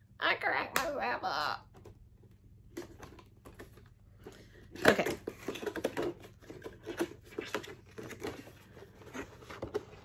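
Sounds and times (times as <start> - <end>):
packaging rustling and clicking: 4.9 - 10.0.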